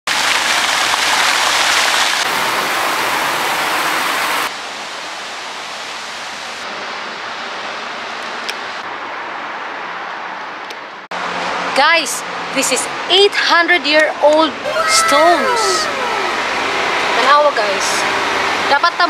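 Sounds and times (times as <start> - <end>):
fountain water splashing: 0.1 - 6.6, 14.6 - 19.0
road traffic: 4.5 - 19.0.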